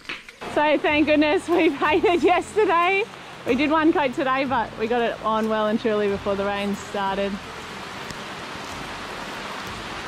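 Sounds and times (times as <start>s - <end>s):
rain on wet paving stones: 0.0s - 10.0s.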